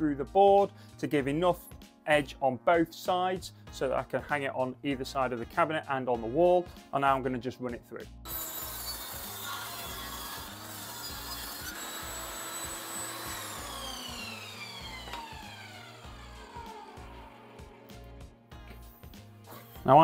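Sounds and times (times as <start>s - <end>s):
table saw ripping a board: 8.3s - 18.0s
saw blade whine spinning down: 8.3s - 18.2s.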